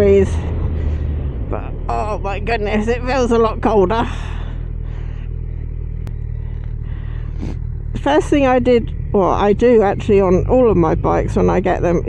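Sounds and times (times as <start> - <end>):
wind rush: 0.0 - 3.6
motorcycle engine running: 0.0 - 12.0.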